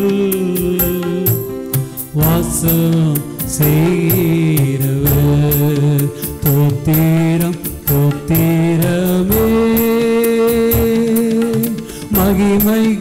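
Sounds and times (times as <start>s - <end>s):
man singing long held notes: 0.0s - 13.0s
steady percussion beat: 0.0s - 13.0s.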